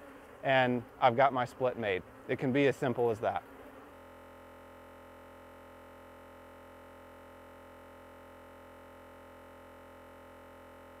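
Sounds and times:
faint steady electronic hum: 0.0 - 11.0.

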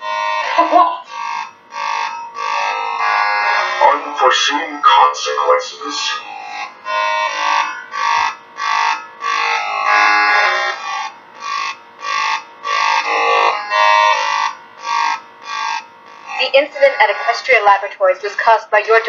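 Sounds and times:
synthesized electronic voice: 3.7 - 6.3, 16.4 - 19.0.

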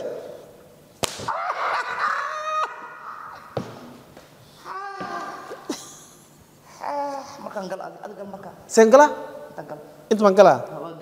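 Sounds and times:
elastic band snapping against skin: 1.0 - 1.3
person crying out: 1.3 - 3.5, 4.6 - 6.1.

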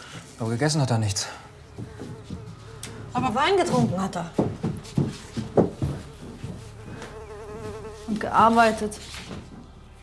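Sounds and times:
housefly buzzing: 1.6 - 3.9, 6.1 - 8.9.

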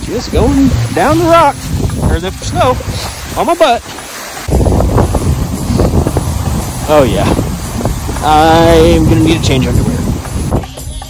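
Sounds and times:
body sliding on snow: 0.0 - 11.0
heavy low rumble: 4.5 - 10.6.

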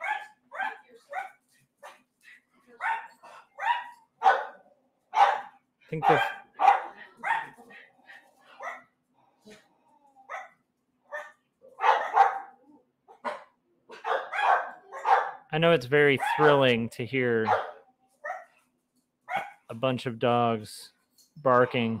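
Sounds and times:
dogs barking: 0.0 - 2.0, 2.7 - 8.9, 10.3 - 15.5, 16.2 - 16.6, 17.4 - 18.6, 19.3 - 19.7.

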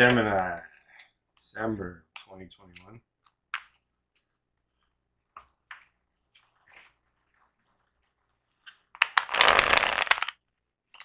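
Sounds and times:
cards being shuffled: 5.6 - 11.0.

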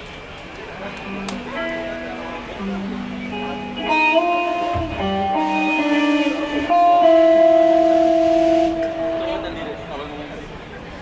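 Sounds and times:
electric guitar sustained note: 0.8 - 10.4.

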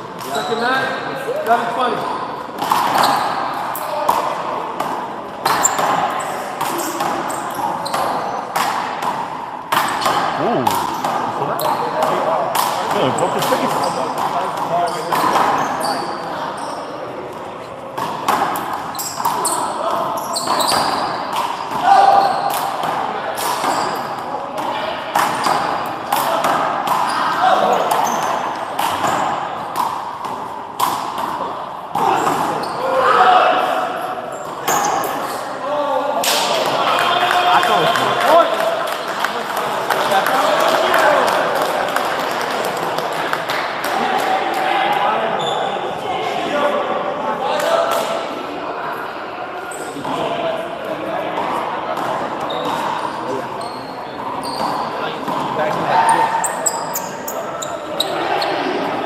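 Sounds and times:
voices calling and talking: 0.0 - 59.0.

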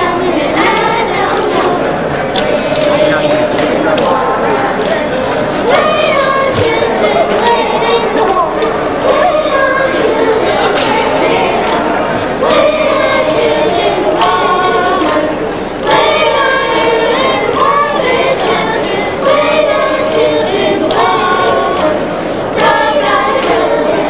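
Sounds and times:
children's choir singing: 0.0 - 24.0.

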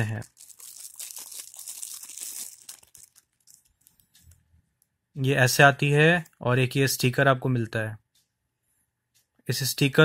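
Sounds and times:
plastic wrapping crinkling: 0.0 - 4.4.

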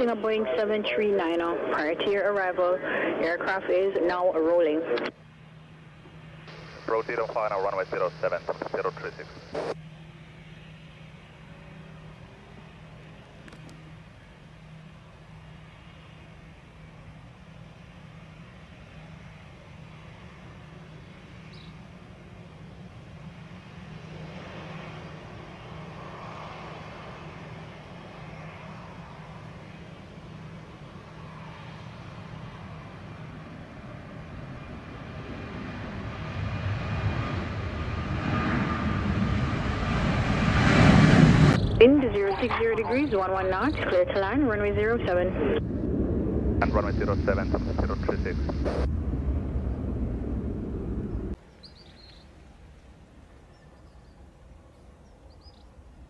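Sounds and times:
jet engines at takeoff thrust: 0.0 - 56.0
steady low hum: 0.0 - 56.0.

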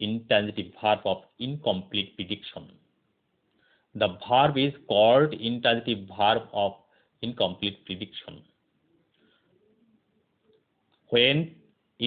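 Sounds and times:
faint bird coos: 8.9 - 10.6.

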